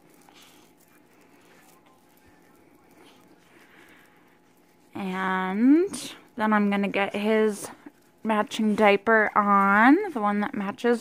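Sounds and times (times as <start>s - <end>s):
cloth wipe rubbing on skin: 0.0s - 11.0s.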